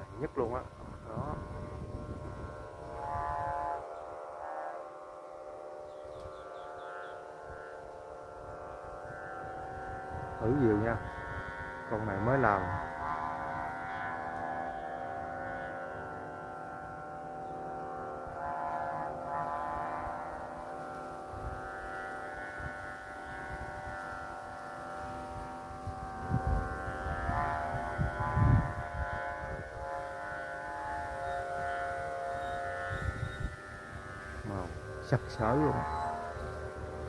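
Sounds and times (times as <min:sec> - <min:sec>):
wind buffeting microphone: 0:00.0 - 0:04.4, 0:05.7 - 0:37.0
kite flutes droning: 0:00.0 - 0:37.0.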